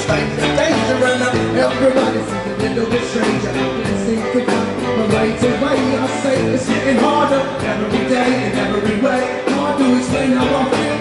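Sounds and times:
drum beat: 0.0s - 11.0s
electric guitars: 0.0s - 11.0s.

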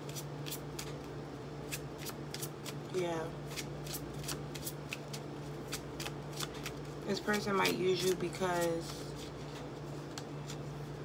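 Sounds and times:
cards being shuffled: 0.0s - 2.8s, 3.5s - 11.0s
steady low hum: 0.0s - 11.0s.

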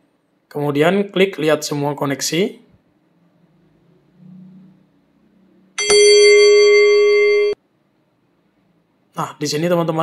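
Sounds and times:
bell-like electronic tone: 5.8s - 7.6s.

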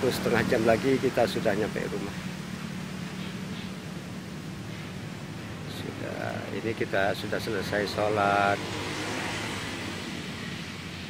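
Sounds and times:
steady hiss: 0.0s - 8.6s.

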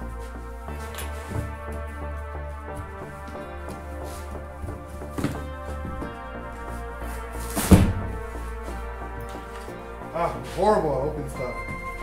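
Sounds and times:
background music: 0.0s - 12.0s
cardboard box thumps: 7.5s - 8.1s.

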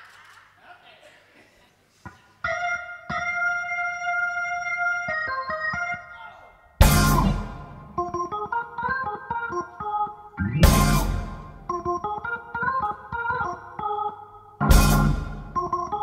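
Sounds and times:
organ playing chords: 2.5s - 6.1s, 6.8s - 16.0s
band crash: 6.8s - 7.9s, 10.4s - 11.7s, 14.6s - 15.6s.

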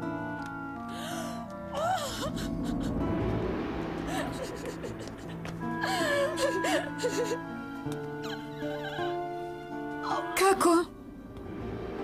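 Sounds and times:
dramatic background music: 0.0s - 12.0s
woman wailing and sobbing: 1.0s - 3.1s, 4.1s - 7.5s, 8.2s - 9.4s.

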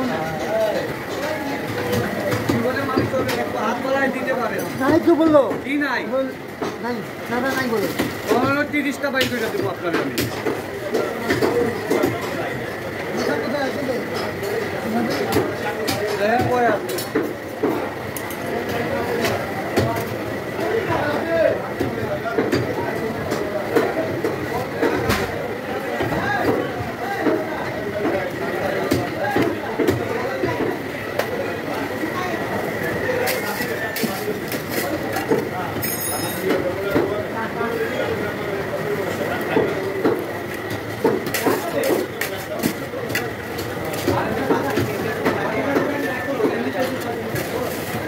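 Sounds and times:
indistinct voices talking: 0.0s - 48.0s
steady noisy din: 0.0s - 48.0s.

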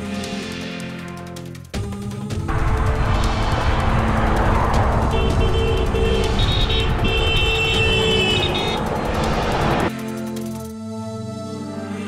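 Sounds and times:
low rumble of road noise: 2.5s - 9.9s
vehicle horns honking: 5.0s - 8.9s.

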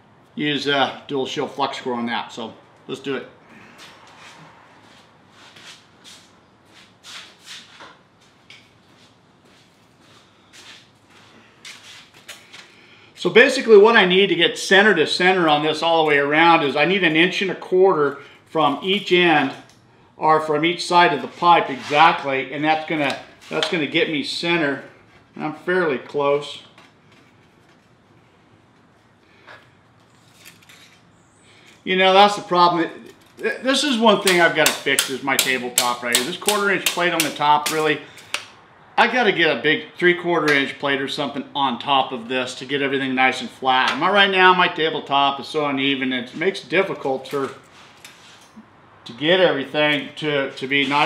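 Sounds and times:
footsteps and shuffling: 3.6s - 12.7s
man's voice: 31.9s - 38.0s.

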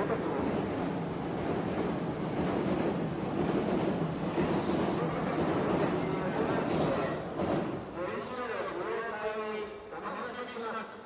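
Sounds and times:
city street noise: 0.0s - 11.0s.

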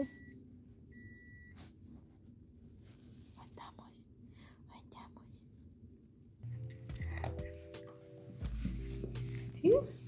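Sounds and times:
soft whispered sounds: 1.9s - 5.9s.

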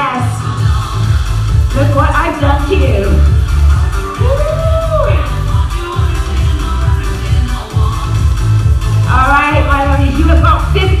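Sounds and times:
dance-pop music with singing: 0.0s - 11.0s.

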